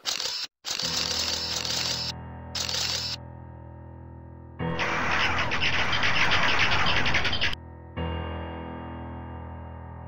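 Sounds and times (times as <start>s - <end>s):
music with low chord: 3.2s - 4.7s, 7.6s - 10.0s.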